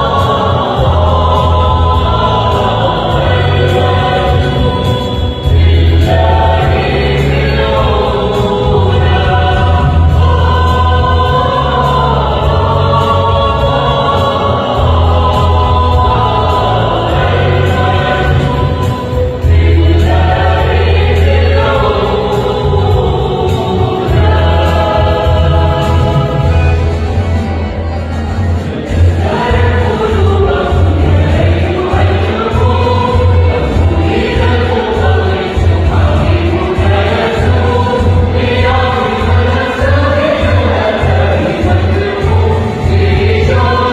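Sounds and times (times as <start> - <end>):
deep bass accompaniment: 0.0 - 43.9
mixed choir singing a hymn: 0.0 - 43.9.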